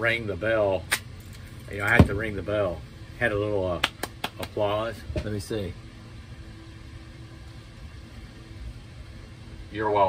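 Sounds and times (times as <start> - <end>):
faint constant hum: 0.0 - 10.0
low background rumble and hiss: 0.0 - 10.0.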